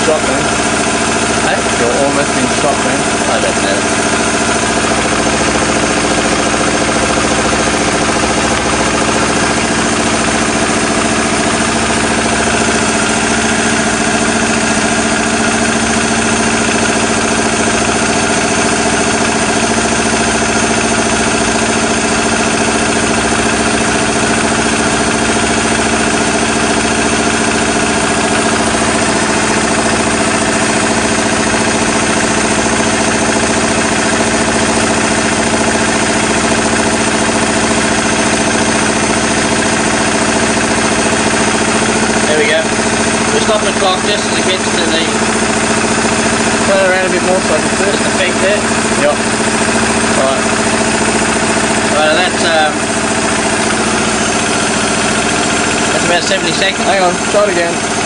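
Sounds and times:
engine idling: 0.0s - 58.0s.

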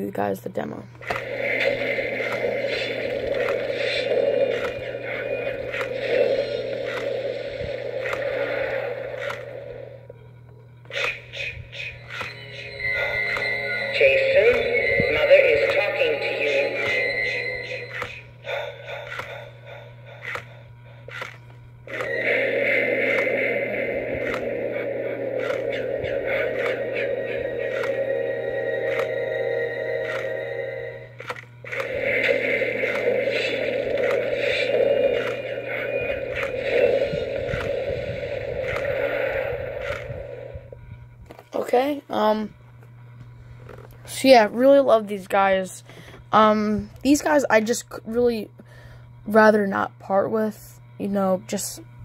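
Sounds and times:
toy motor clicking: 1.0s - 8.4s, 9.2s - 9.5s, 17.8s - 19.5s, 20.1s - 22.2s, 24.2s - 24.6s, 25.4s - 26.8s, 30.0s - 30.4s, 31.1s - 38.1s
tinny soundtrack from small speaker: 10.9s - 19.5s.

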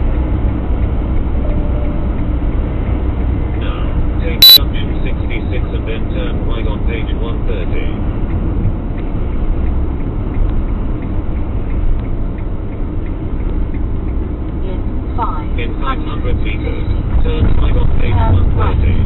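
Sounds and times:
road and engine rumble: 0.0s - 19.0s
loud short beep: 4.4s - 4.7s.

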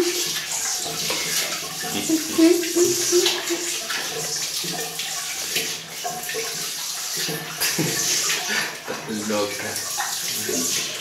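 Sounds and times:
puppy lapping water: 0.0s - 11.0s
water running into ceramic bowl: 0.0s - 11.0s.

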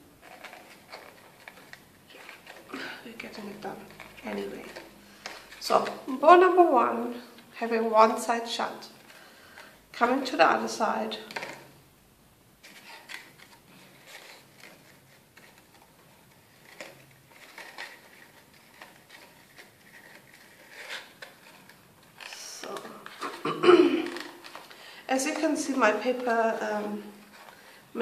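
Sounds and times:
paper and ribbon rustling: 0.2s - 8.1s, 8.8s - 11.8s, 12.6s - 28.0s.

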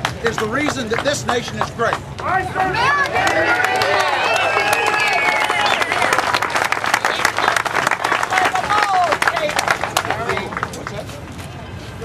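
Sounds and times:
crowd applauding: 0.0s - 11.0s
voices calling out: 2.0s - 10.8s.

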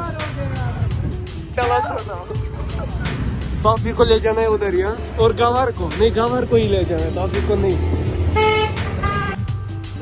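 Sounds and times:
road traffic rumble: 0.0s - 10.0s
vehicle horn toot: 8.4s - 9.6s.

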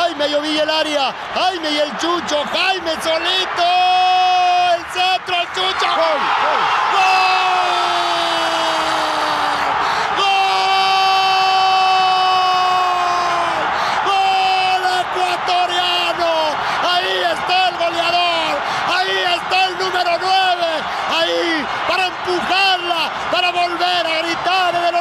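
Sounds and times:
commentator shouting goal cry: 0.0s - 25.0s
stadium crowd cheering: 0.0s - 25.0s.

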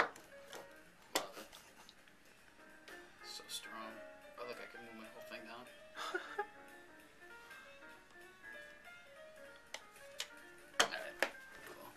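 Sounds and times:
background music: 0.0s - 11.9s.

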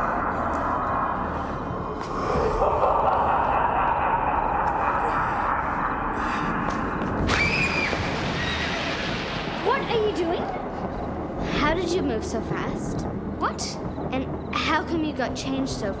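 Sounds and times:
steady rushing noise: 0.0s - 16.0s.

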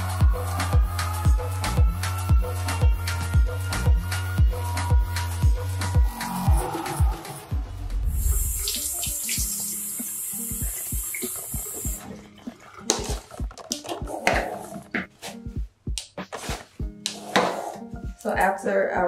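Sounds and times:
background music with beat: 0.0s - 19.0s
water running from faucet: 8.0s - 13.8s
water splashing in basin: 8.2s - 14.7s.

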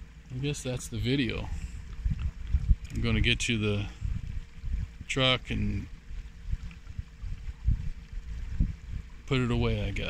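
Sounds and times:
faint steady hum: 0.0s - 10.0s
water and wind thumping hull: 0.0s - 10.0s.

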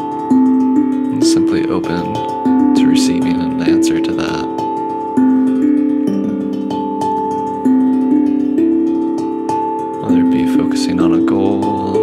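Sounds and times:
steel tongue drum melody: 0.0s - 12.0s.

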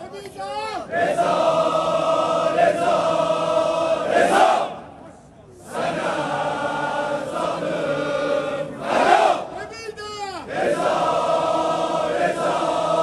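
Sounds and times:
men chanting in unison: 0.9s - 4.8s, 10.5s - 13.0s.

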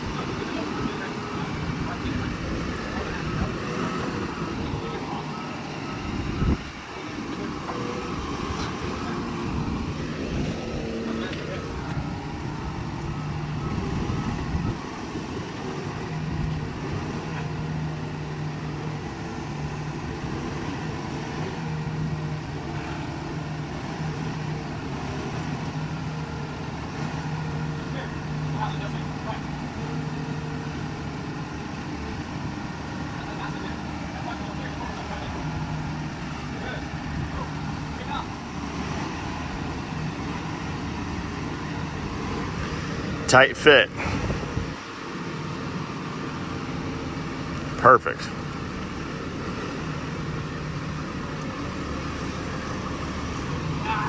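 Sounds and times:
forklift engine running: 0.0s - 54.0s.

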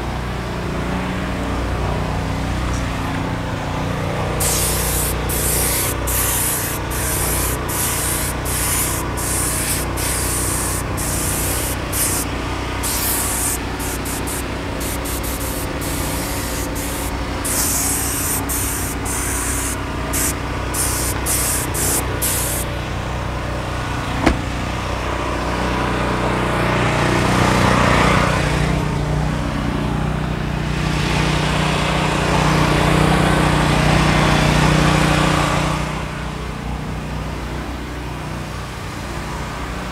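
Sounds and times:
low mechanical hum: 0.0s - 27.8s
compressed-air spray gun hissing: 4.4s - 22.7s.

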